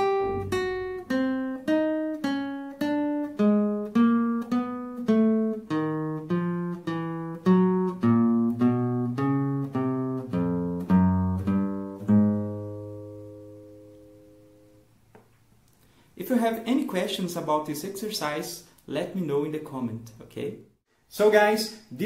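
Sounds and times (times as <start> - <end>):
classical guitar picked notes: 0.0 - 15.0.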